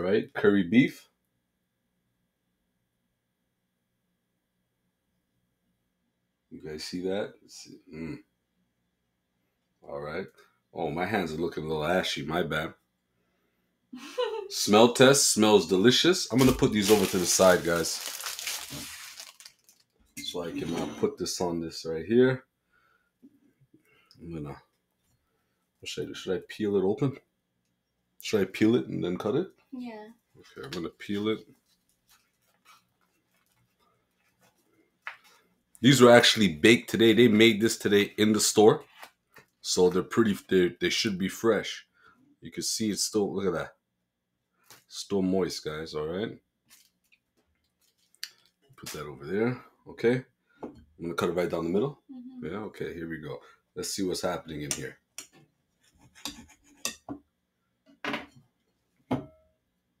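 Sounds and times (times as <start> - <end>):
soft rustles of bun peeled: 16.4 - 20.0, 31.4 - 35.7, 46.6 - 48.8.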